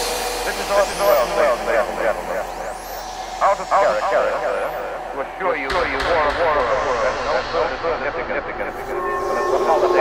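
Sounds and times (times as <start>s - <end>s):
sampled voice: 8.5s - 10.0s.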